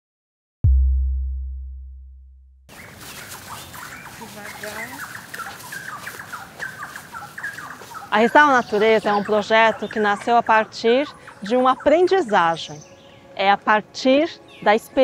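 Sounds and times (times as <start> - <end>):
deep low boom: 0.6 - 2.7
birds chirping: 2.7 - 15.0.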